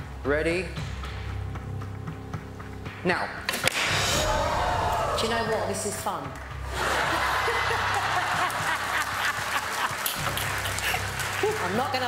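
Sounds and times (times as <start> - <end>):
audience laughing and clapping: 6.6 - 12.0
woman laughing: 6.9 - 11.1.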